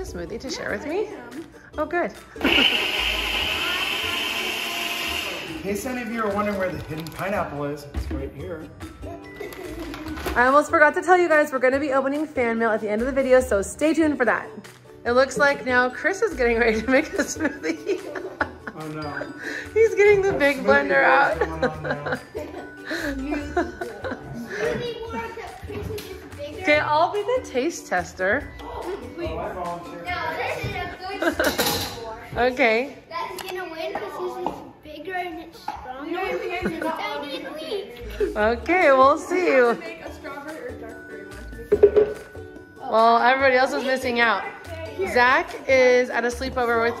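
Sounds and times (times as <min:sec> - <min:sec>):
countertop blender running: 0:02.4 - 0:06.6.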